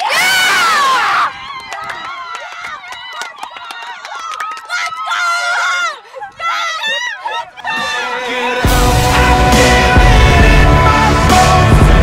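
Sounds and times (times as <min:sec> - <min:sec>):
girls screaming: 0:00.0 - 0:08.2
excited shouts and chatter: 0:00.0 - 0:10.0.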